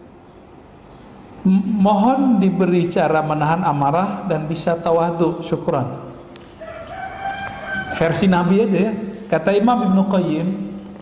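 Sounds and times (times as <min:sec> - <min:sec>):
rooster crowing: 0:06.5 - 0:08.6.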